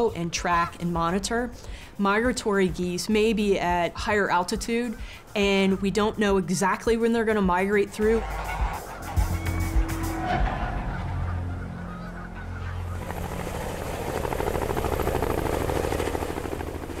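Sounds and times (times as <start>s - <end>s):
goose honking: 7.6s - 13.0s
helicopter rotor chopping: 12.4s - 17.0s.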